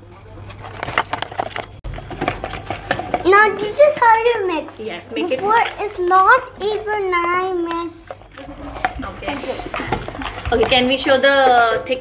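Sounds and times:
spoon scraping a plastic jug: 0:00.6 - 0:11.7.

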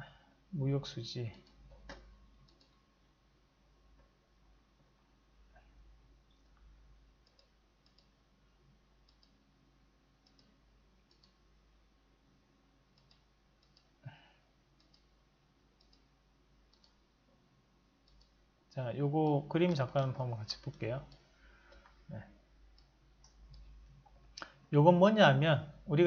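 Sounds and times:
computer mouse clicks: 0:01.3 - 0:02.8, 0:06.3 - 0:08.2, 0:09.0 - 0:09.4, 0:10.2 - 0:11.4, 0:13.0 - 0:14.0, 0:14.8 - 0:15.2, 0:15.8 - 0:16.1, 0:16.7 - 0:17.0, 0:18.0 - 0:18.4, 0:19.6 - 0:22.0, 0:22.7 - 0:24.6.

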